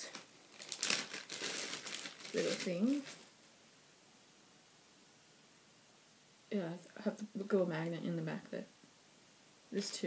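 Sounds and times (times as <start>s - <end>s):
packaging crinkling: 0.0s - 3.3s.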